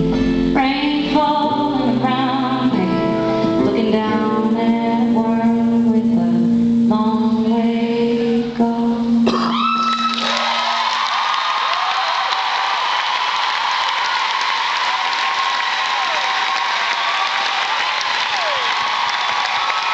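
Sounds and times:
audience applause and cheering: 9.5 - 19.9
whistles from audience: 18.4 - 19.9.

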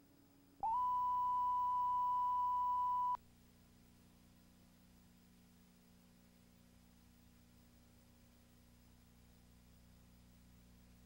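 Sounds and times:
faint low hum: 0.0 - 11.0
steady line-up tone: 0.6 - 3.2.

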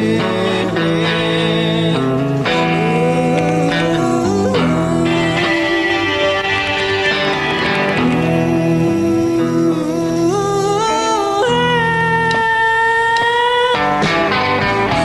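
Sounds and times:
guitar-led soundtrack music: 0.0 - 15.0.

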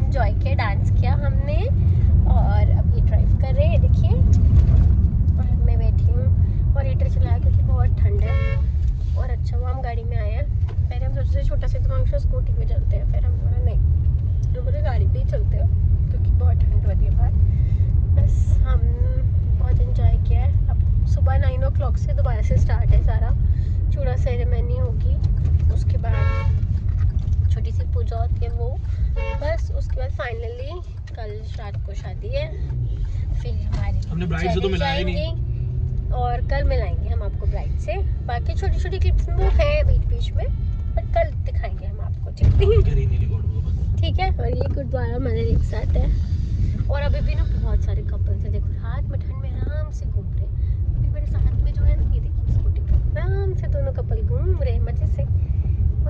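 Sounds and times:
car road and engine rumble: 0.0 - 56.0
voices talking: 33.5 - 35.4.

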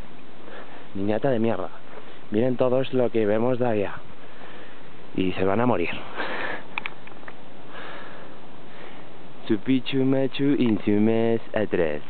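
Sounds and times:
steady hiss: 0.0 - 12.0
man breathing: 0.4 - 1.0, 4.2 - 5.0, 6.0 - 6.8, 7.6 - 9.3
faint clicks: 6.7 - 7.4.

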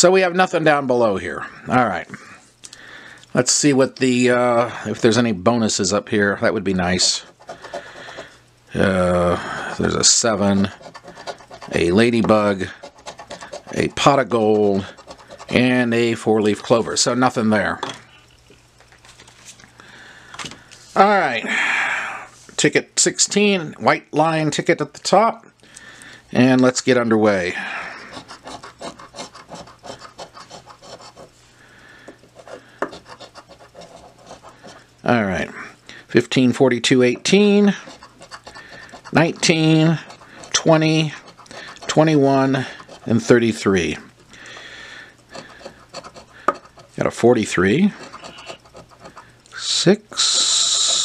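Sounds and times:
coin scratching lottery ticket: 7.0 - 8.4, 9.1 - 17.1, 28.0 - 31.3, 32.3 - 34.9, 37.1 - 43.7, 45.3 - 49.3
cards rustling: 18.8 - 19.7.

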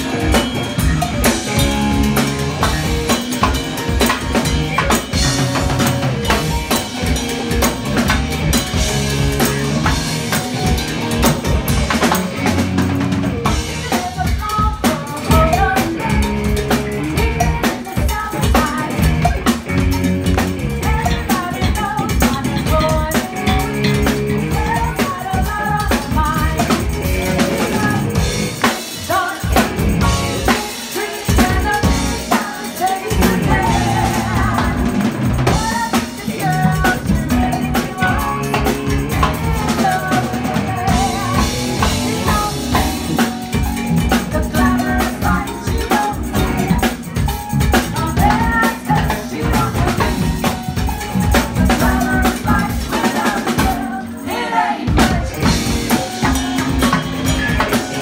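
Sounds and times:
live dance band playing: 0.0 - 58.0
hand percussion: 13.4 - 58.0.

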